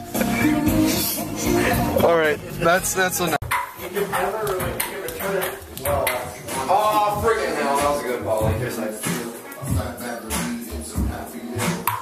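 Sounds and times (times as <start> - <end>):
people's voices: 0.2 - 11.7.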